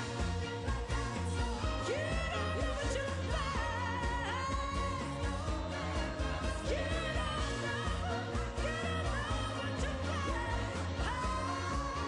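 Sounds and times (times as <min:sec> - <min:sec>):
pop-rock band playing: 0:00.0 - 0:12.0
woman singing into microphone: 0:00.0 - 0:12.0.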